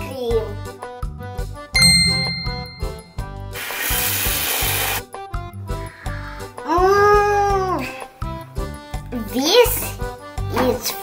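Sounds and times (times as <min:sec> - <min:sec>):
children's background music: 0:00.0 - 0:11.0
bright ding: 0:01.8 - 0:03.7.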